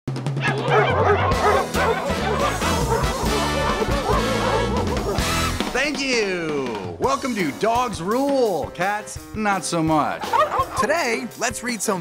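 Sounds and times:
upbeat music with bass line: 0:00.1 - 0:12.0
dog barks and yips: 0:00.4 - 0:05.5.

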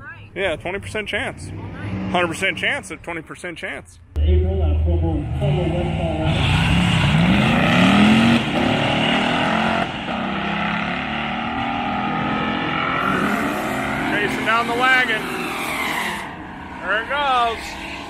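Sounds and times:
race car engine accelerating: 0:04.2 - 0:18.0.

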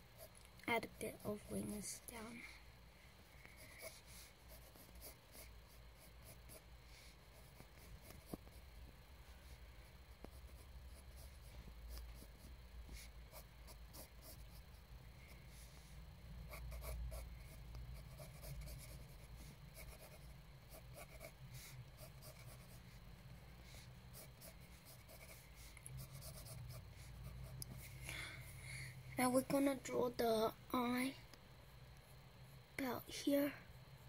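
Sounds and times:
low steady hum: 0:00.0 - 0:34.0
drawing strokes on paper: 0:03.5 - 0:08.6, 0:09.4 - 0:23.0, 0:23.6 - 0:28.0.

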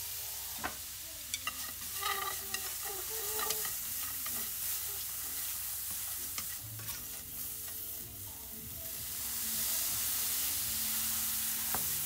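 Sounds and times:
fish stirred in frying pan: 0:00.1 - 0:12.0.

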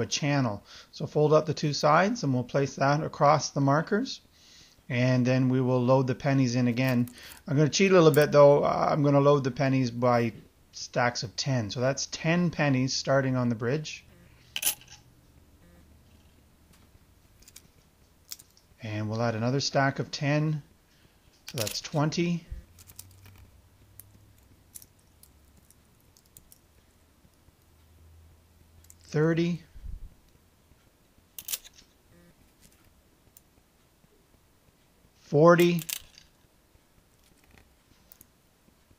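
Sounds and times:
sharp clicks of coins: 0:14.6 - 0:15.0, 0:31.4 - 0:31.8, 0:35.6 - 0:36.3.

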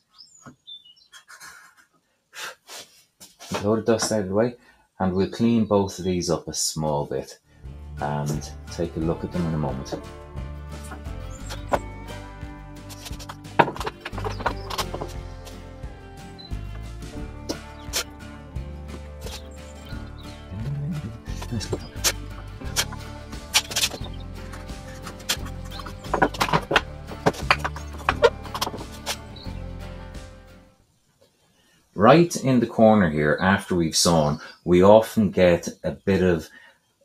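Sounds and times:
background music: 0:07.5 - 0:30.8
wood chisel scraping: 0:10.8 - 0:12.2, 0:12.8 - 0:15.7, 0:17.4 - 0:18.2, 0:18.9 - 0:19.9, 0:21.2 - 0:29.4.

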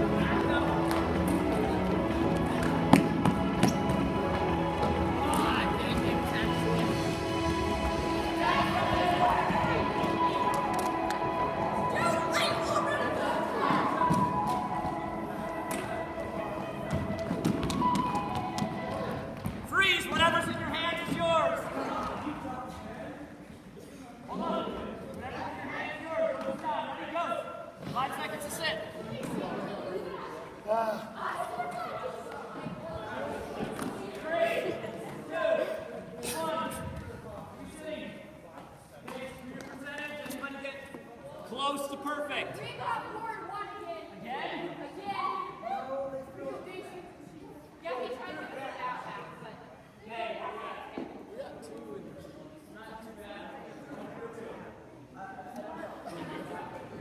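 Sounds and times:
background music: 0:00.0 - 0:21.9
students calling and chattering: 0:00.0 - 0:57.0.

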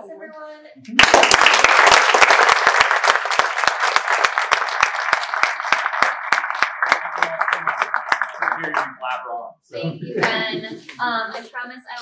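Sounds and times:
audience applauding: 0:01.0 - 0:09.3.

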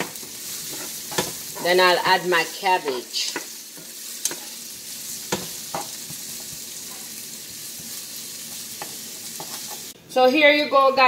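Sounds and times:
vegetables sizzling in a pan: 0:00.0 - 0:10.4.

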